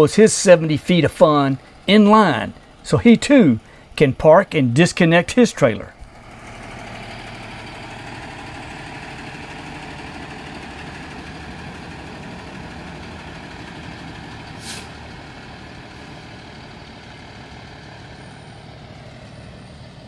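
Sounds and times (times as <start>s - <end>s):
motorhome engine running: 0.0s - 20.0s
air hiss: 14.6s - 15.0s.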